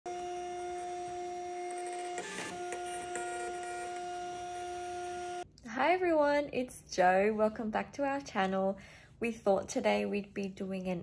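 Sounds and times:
label printer motor whine: 0:00.1 - 0:05.4.

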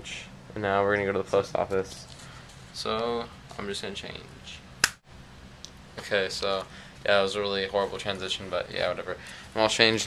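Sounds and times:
finger snap: 0:04.8 - 0:05.0.

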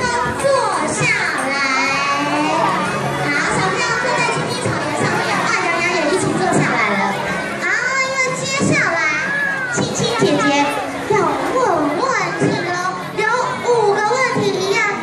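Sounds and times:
children chattering and calling out: 0:00.0 - 0:15.0.

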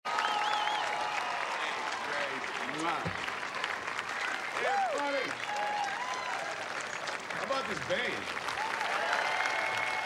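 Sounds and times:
audience applauding: 0:00.1 - 0:10.0.

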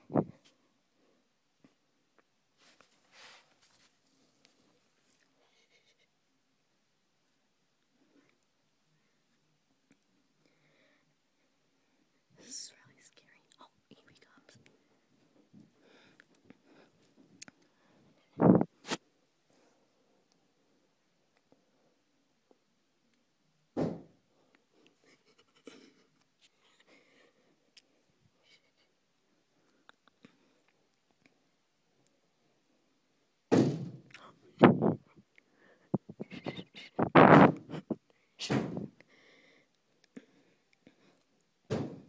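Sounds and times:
person whispering: 0:12.4 - 0:14.7, 0:36.1 - 0:37.2
sudden loud thud: 0:23.8 - 0:24.1, 0:33.5 - 0:34.0.

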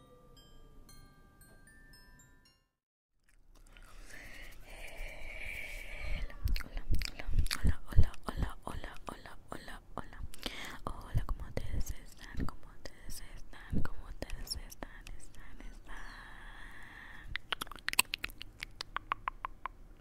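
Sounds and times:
whispering: 0:04.2 - 0:17.4
wet mouth clicks: 0:06.0 - 0:09.3, 0:17.3 - 0:19.8.

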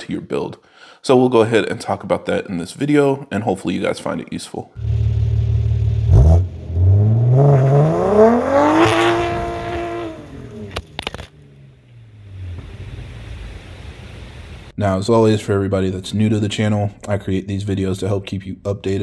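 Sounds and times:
car engine revving: 0:04.8 - 0:13.6.

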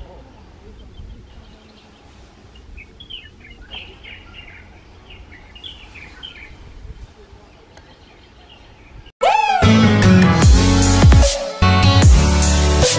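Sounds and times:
small birds chirping: 0:00.0 - 0:09.1.

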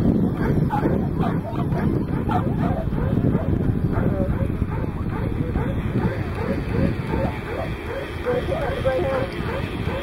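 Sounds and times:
dogs barking and yipping: 0:00.0 - 0:10.0
wind rumbling on microphone: 0:00.0 - 0:10.0.

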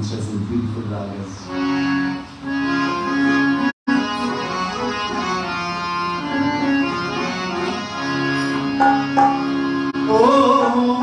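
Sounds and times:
harmonium playing: 0:01.4 - 0:11.0.

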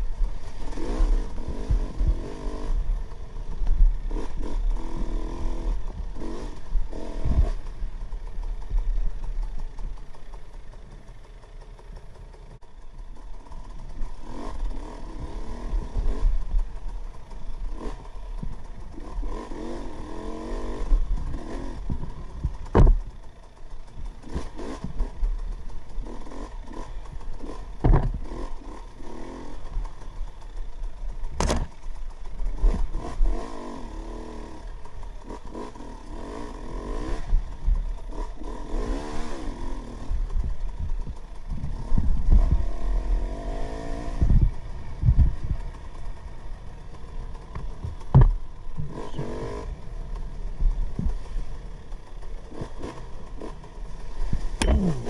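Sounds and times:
dirt bike engine revving: 0:00.0 - 0:55.0
sharp knocks: 0:22.7 - 0:23.0, 0:27.8 - 0:28.2, 0:31.4 - 0:31.7, 0:48.0 - 0:48.4.

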